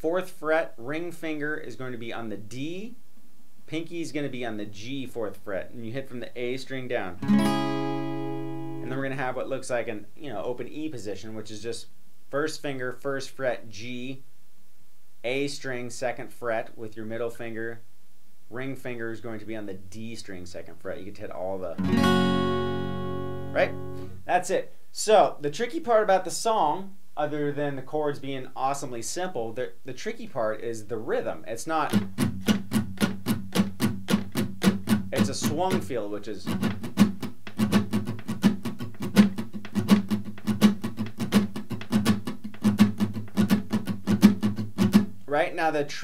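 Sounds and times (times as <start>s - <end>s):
acoustic guitar strum: 7.2s - 9.0s, 21.8s - 24.2s, 31.9s - 35.8s, 36.5s - 45.2s.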